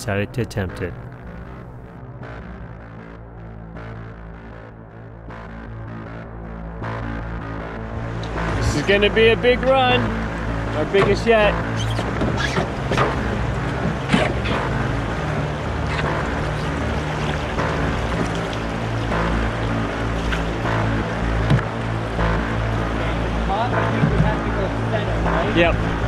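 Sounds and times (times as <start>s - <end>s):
background music with low tones: 0.0s - 26.0s
paddle splashes: 10.8s - 24.8s.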